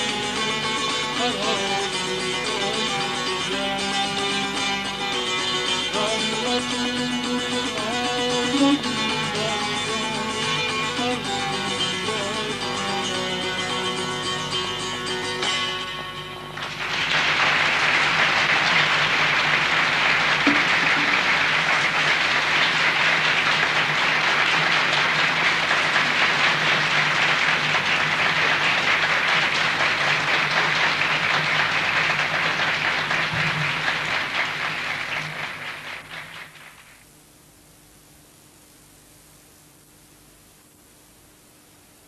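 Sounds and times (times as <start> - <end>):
audience applauding: 16.5 - 37.0.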